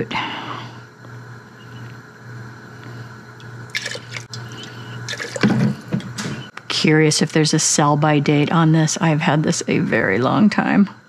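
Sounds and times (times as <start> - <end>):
liquid pouring from glass bottle: 3.7 - 5.8.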